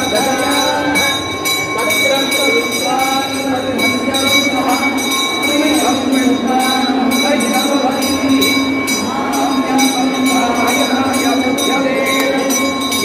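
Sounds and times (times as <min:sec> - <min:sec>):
high ringing tone: 0:00.0 - 0:13.0
voices chanting over loudspeaker: 0:00.0 - 0:13.0.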